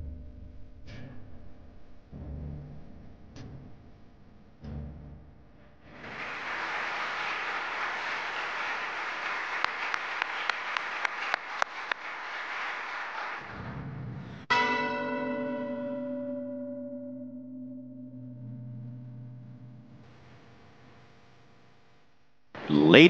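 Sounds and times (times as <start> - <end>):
audience applause: 5.9 - 13.8, 22.6 - 23.0
single bell ringing: 14.5 - 18.1.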